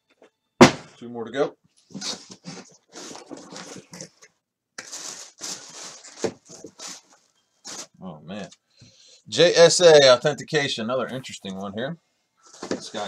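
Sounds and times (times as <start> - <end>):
cardboard box rustling and scraping: 1.9 - 4.1.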